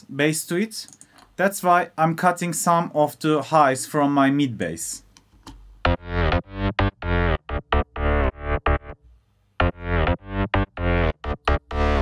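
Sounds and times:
synth bass playing short notes: 5.8s - 9.0s, 9.6s - 12.0s.

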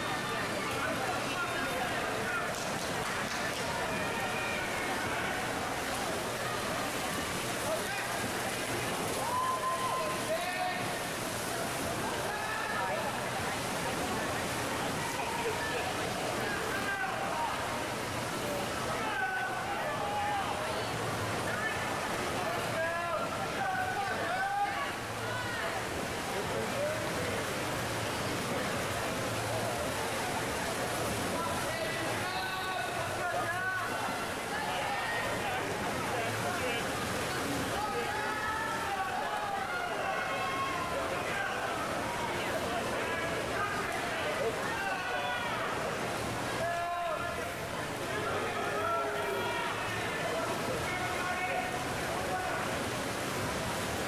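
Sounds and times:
spectators shouting and cheering: 0.0s - 27.0s, 29.5s - 53.5s
splashing water from swimmers: 0.0s - 54.0s.

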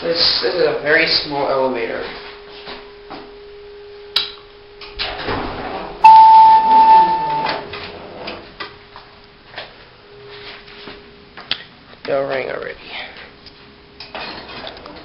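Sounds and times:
faint steady elevator hum: 0.0s - 15.0s
elevator arrival chime: 6.0s - 8.1s.

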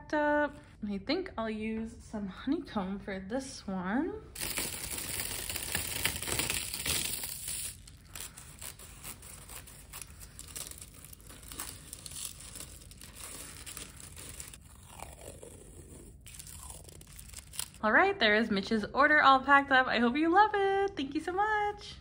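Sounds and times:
paper crinkling and rustling: 4.4s - 14.6s, 16.3s - 17.8s.

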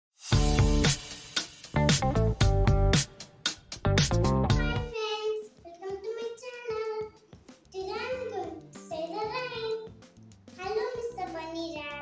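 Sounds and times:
upbeat jingle with drum beat: 0.2s - 4.9s
young boy talking: 4.5s - 10.0s, 10.6s - 12.0s.

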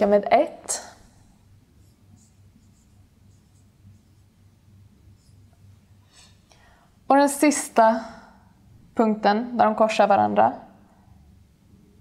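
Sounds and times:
marker strokes on whiteboard: 1.6s - 6.4s.

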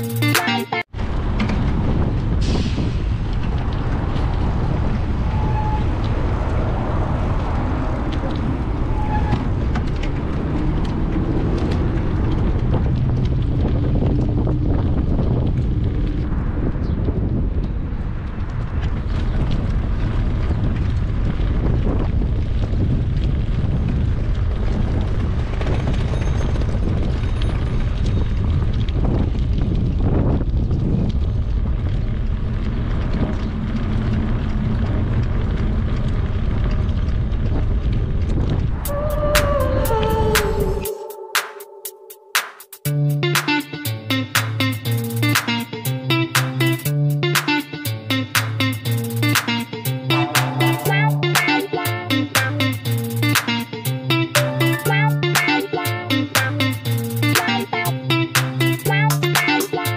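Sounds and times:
guitar music: 0.0s - 0.9s, 39.5s - 59.9s
wind buffeting microphone: 0.9s - 41.3s.

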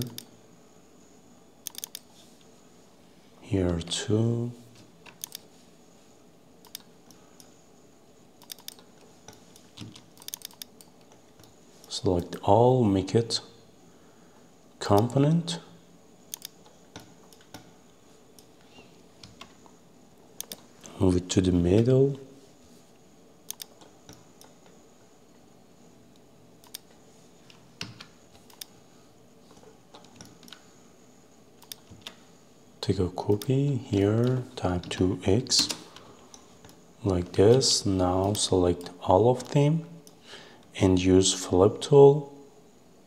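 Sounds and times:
keyboard and mouse clicks: 0.0s - 0.3s, 1.6s - 2.1s, 5.0s - 5.4s, 6.6s - 7.5s, 8.4s - 11.6s, 16.3s - 17.7s, 20.4s - 20.7s, 23.5s - 24.8s, 26.6s - 28.7s, 29.5s - 30.6s, 31.6s - 32.2s
faint steady background noise: 0.0s - 43.0s.

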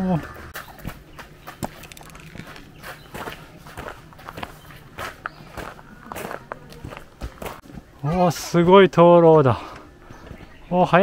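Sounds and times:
footsteps on gravel and stone steps: 0.3s - 10.7s.

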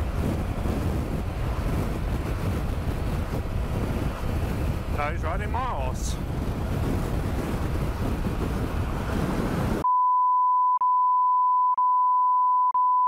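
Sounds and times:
wind rushing over microphone: 0.0s - 9.8s
high-pitched censor bleep: 9.8s - 13.0s.

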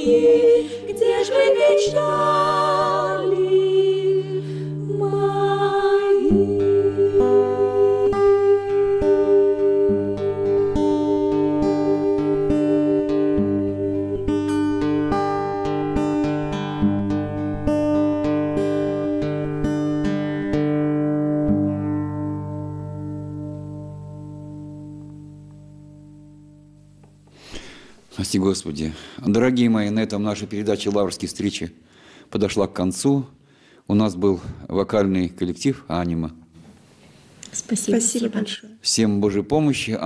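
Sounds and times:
acoustic guitar plucking: 0.0s - 5.2s, 5.8s - 28.0s.

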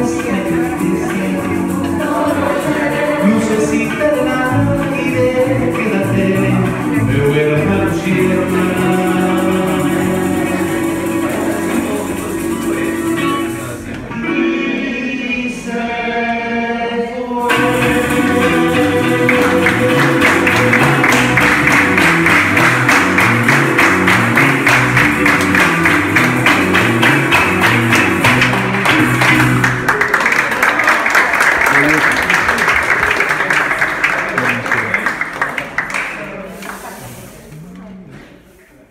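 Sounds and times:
rapid strumming on string instrument: 0.0s - 14.1s, 17.4s - 30.0s
electric bass notes: 0.0s - 15.5s, 17.4s - 30.0s
hand drums: 17.5s - 29.9s.

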